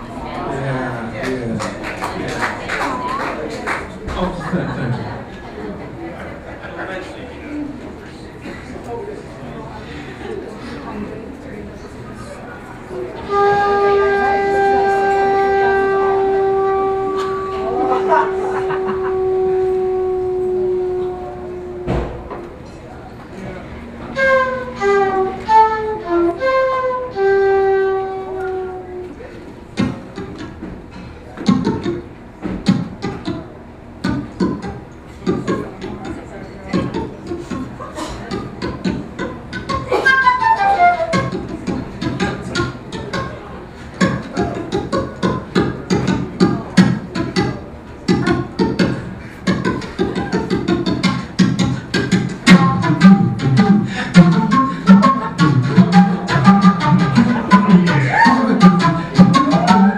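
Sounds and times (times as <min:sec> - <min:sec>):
flute playing: 0:13.2 - 0:22.2, 0:24.0 - 0:30.5, 0:38.3 - 0:45.8, 0:46.6 - 0:59.9
big band jazz: 0:38.4 - 0:59.9.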